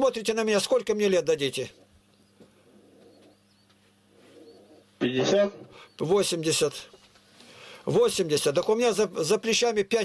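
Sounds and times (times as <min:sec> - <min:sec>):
faint high bird chirps: 0:03.0 - 0:04.9.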